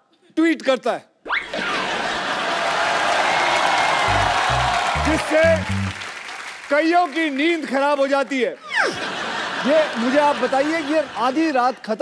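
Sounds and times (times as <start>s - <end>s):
studio audience applauding: 1.8s - 8.2s, 9.6s - 11.5s.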